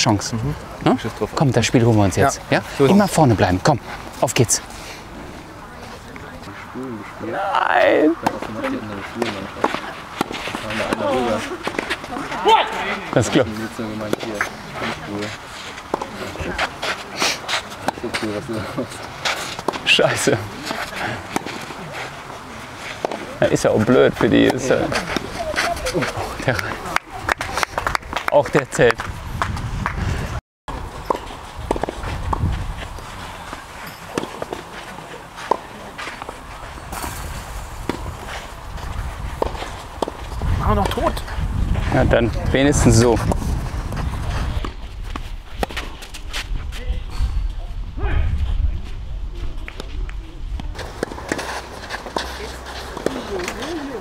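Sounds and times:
people's voices: 0:00.0 - 0:29.1, 0:31.5 - 0:45.1, 0:45.7 - 0:54.0
rackets hitting tennis balls: 0:07.5 - 0:30.0, 0:30.7 - 0:41.3, 0:42.8 - 0:46.5, 0:50.6 - 0:54.0
racket striking tennis ball: 0:09.2 - 0:12.8, 0:23.0 - 0:23.4, 0:31.0 - 0:32.5, 0:33.9 - 0:34.7, 0:50.8 - 0:54.0
footsteps on clay: 0:30.7 - 0:46.9, 0:48.4 - 0:54.0.

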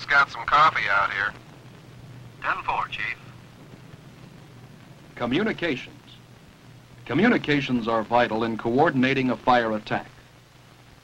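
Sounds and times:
radio voice: 0:00.0 - 0:01.4, 0:02.4 - 0:03.3
low steady hum with hiss: 0:00.0 - 0:11.0.

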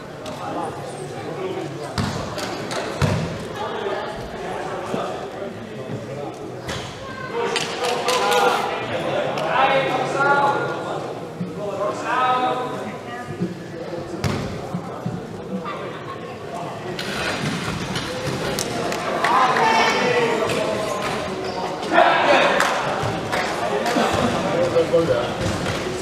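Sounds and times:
crowd noise: 0:00.0 - 0:26.0.

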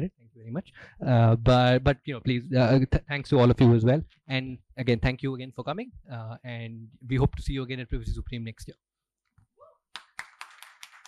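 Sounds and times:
audience applause: 0:10.0 - 0:11.0.

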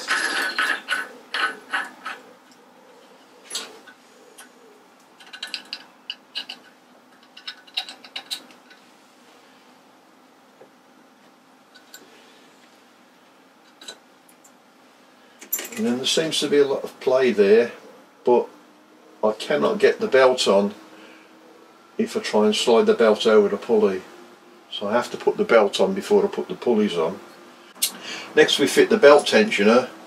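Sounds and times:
metal nut clinking: 0:00.0 - 0:02.2, 0:05.2 - 0:08.8.

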